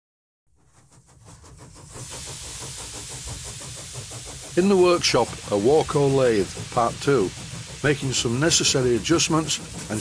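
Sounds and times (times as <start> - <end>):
steam hissing: 0.6 - 10.0.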